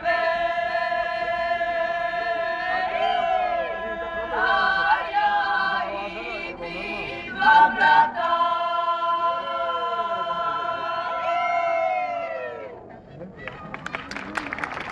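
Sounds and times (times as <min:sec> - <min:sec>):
choir singing sustained chords: 0:00.0 - 0:12.7.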